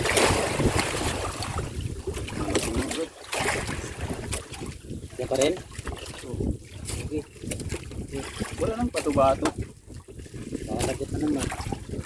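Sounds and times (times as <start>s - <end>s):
water slapping against boat: 0.0s - 12.0s
wind buffeting microphone: 0.0s - 12.0s.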